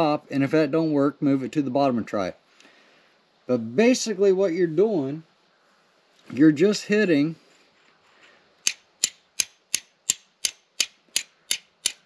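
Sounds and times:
fire striker clicking on flint: 0:08.6 - 0:12.0.

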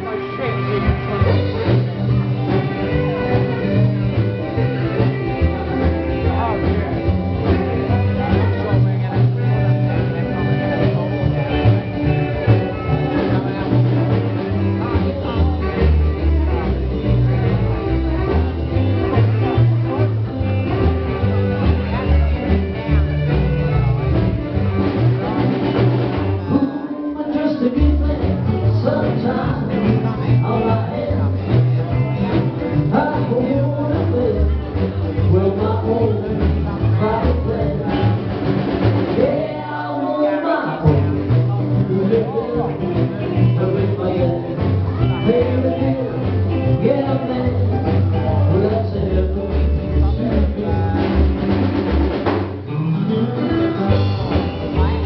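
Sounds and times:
bass line: 0:00.0 - 0:55.0
live band playing: 0:00.0 - 0:55.0.

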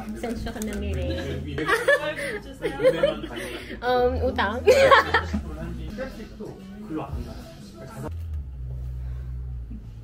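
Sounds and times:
low steady rumble: 0:08.1 - 0:10.0.

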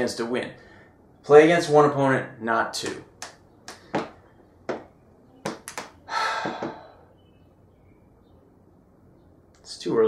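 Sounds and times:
breathy exhale: 0:06.1 - 0:07.2.

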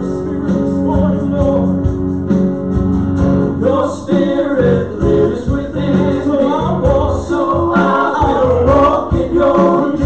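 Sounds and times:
voices singing in harmony: 0:03.5 - 0:10.0.

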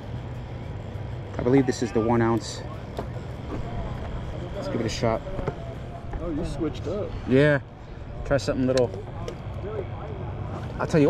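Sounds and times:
faint voices: 0:00.0 - 0:11.0
outdoor background noise: 0:00.0 - 0:11.0.

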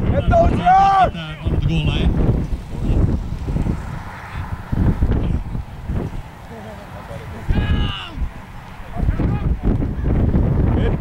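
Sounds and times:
wind buffeting microphone: 0:00.0 - 0:11.0
person shouting: 0:00.2 - 0:01.1, 0:07.5 - 0:08.3.

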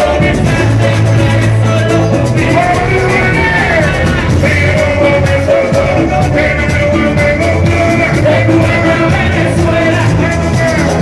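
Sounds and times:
heavy bass: 0:00.0 - 0:11.0
live band music: 0:00.0 - 0:11.0
man singing into microphone: 0:00.0 - 0:11.0.

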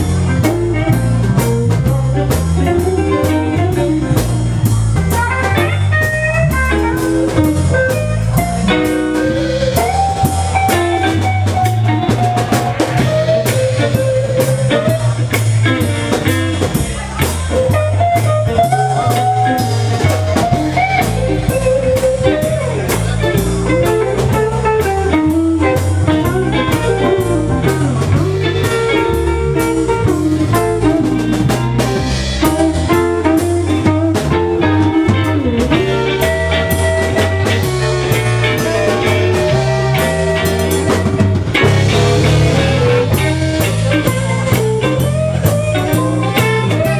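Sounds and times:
electric blues band playing: 0:00.0 - 0:46.9.

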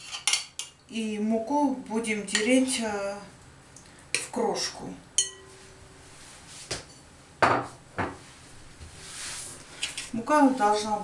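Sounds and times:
metal spoon clinking on glass bowl: 0:05.2 - 0:05.5.

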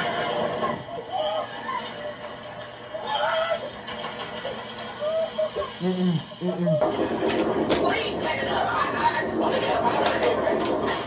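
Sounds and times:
steady rush of noise: 0:06.8 - 0:11.0.

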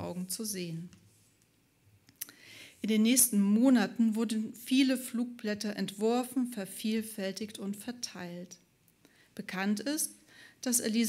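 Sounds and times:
woman speaking: 0:00.0 - 0:00.9, 0:02.8 - 0:08.6, 0:09.4 - 0:11.0
faint breath: 0:02.3 - 0:02.8, 0:09.0 - 0:09.4, 0:10.2 - 0:10.6.

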